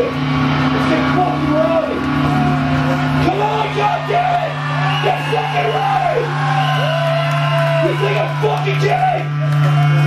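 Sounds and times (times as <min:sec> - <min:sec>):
amplifier low hum: 0:00.0 - 0:10.0.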